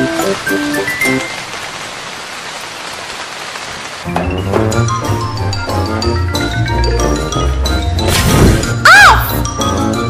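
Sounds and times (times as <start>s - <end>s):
steady falling rain: 0.0s - 7.4s.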